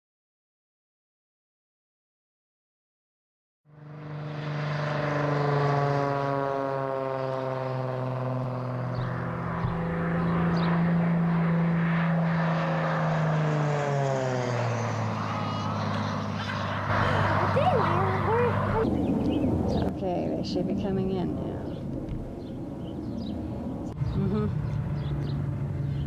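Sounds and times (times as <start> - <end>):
propeller airplane engine drone: 3.7 - 26.0.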